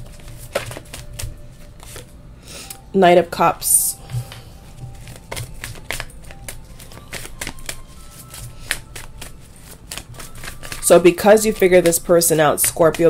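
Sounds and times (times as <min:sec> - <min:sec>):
cards being shuffled: 0:00.0 - 0:02.1, 0:04.0 - 0:13.0.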